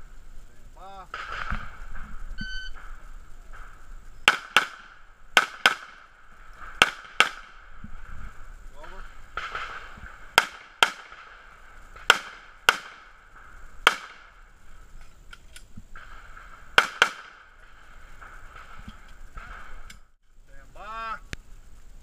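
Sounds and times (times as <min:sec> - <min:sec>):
handgun shots: 0:04.3 - 0:06.0.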